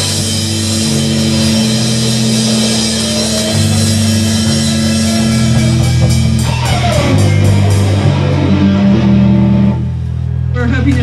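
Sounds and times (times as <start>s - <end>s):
electric guitar and bass chord: 0.0s - 11.0s.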